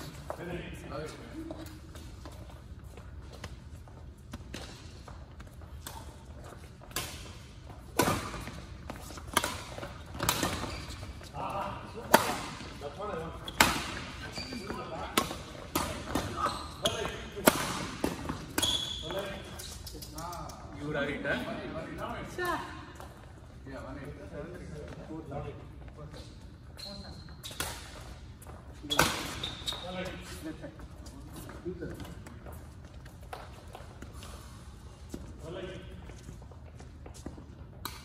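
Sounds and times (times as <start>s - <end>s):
rackets striking shuttlecock: 6.8s - 10.7s.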